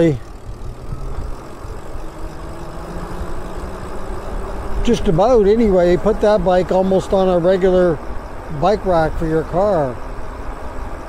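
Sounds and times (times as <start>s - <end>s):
faint electric motor whine: 0.0s - 11.0s
wind: 0.0s - 11.0s.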